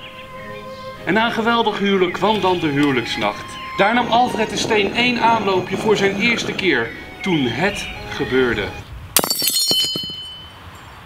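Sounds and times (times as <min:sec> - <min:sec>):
glass shattering: 0:09.2 - 0:10.5
glass shards clinking: 0:09.2 - 0:10.9.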